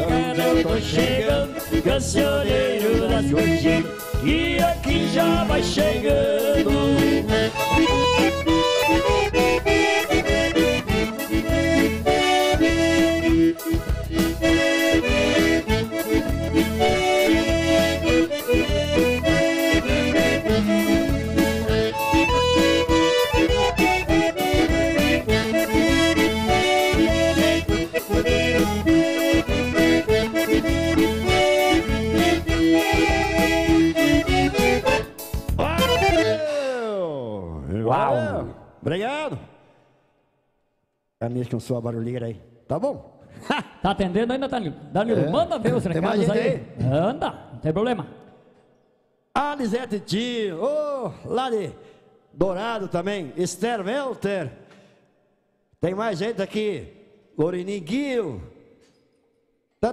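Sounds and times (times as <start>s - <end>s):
percussion beat: 0.0s - 36.4s
electronic keyboard: 0.0s - 36.6s
accordion band music: 0.0s - 37.0s, 45.0s - 46.8s.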